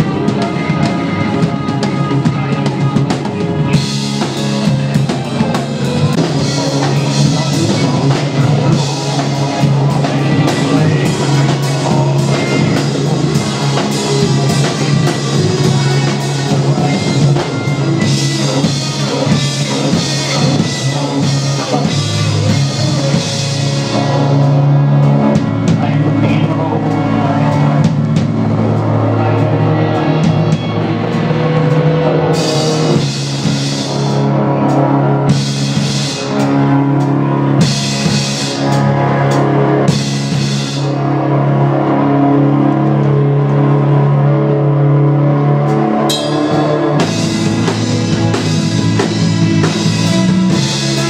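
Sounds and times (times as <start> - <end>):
bass: 0.0 - 51.0
drum kit: 0.0 - 51.0
electric guitar: 0.0 - 51.0
keyboards: 0.0 - 51.0
cymbal crashes: 46.1 - 49.2.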